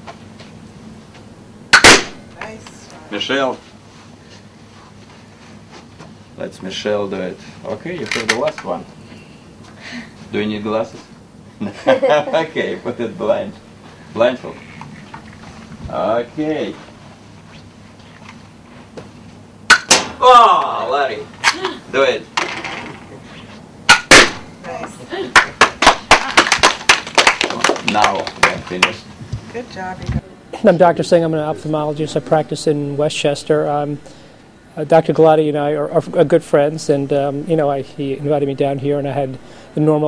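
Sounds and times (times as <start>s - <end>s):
balloon bursting: 1.7s - 2.2s
toy pistol cracks: 1.8s - 2.1s
toy pistol shot: 1.8s - 2.2s, 19.7s - 20.1s, 23.9s - 24.4s.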